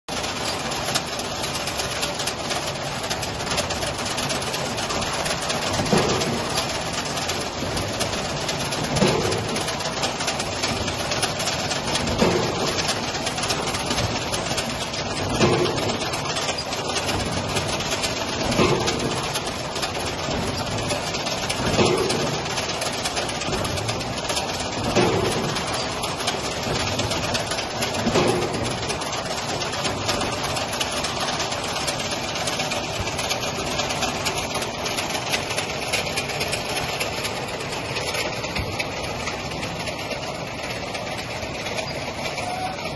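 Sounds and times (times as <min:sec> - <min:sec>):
conveyor mechanical hum: 0:00.1 - 0:42.9
heavy machine thump: 0:00.2 - 0:42.9.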